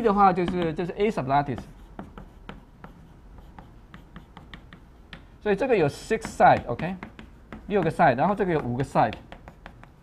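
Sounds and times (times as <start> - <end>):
chalk tapping on blackboard: 0.3 - 5.4, 6.0 - 10.0.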